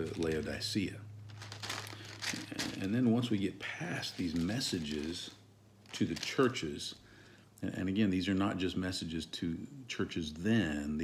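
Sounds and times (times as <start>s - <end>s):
thin pages turning and rustling: 0.0s - 0.6s, 1.3s - 6.7s.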